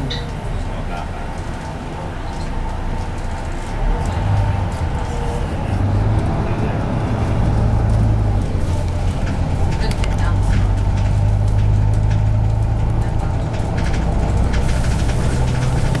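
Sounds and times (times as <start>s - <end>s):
bus engine droning: 0.0s - 16.0s
bodywork clicks and rattles: 1.3s - 16.0s.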